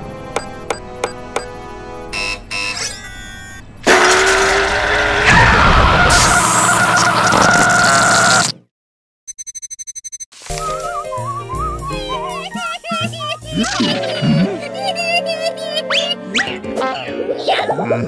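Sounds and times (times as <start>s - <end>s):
monster scream: 3.9s - 8.6s
rapid electronic typing beeps: 9.3s - 10.3s.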